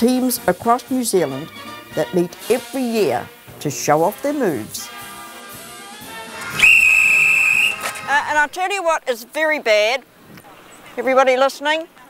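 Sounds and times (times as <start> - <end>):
faint music: 0.0 - 12.0
long steady whistle blast: 6.4 - 8.3.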